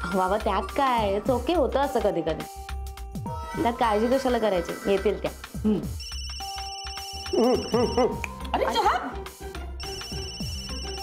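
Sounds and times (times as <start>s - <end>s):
phone ringtone trilling: 5.8s - 8.2s, 9.8s - 11.0s.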